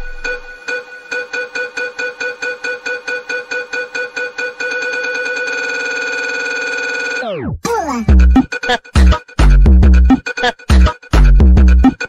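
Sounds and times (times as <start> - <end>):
sped-up funk track: 7.2 - 12.0.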